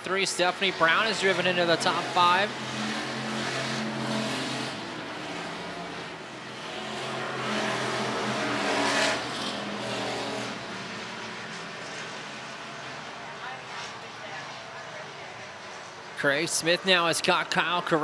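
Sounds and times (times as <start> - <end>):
race car engines droning: 0.0 - 18.0.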